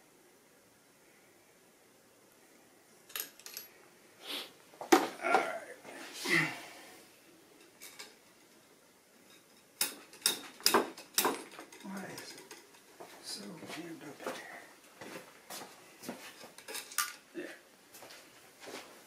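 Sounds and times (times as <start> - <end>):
metallic clicks and clinks: 3.1 - 3.7, 9.3 - 12.9, 16.6 - 17.3.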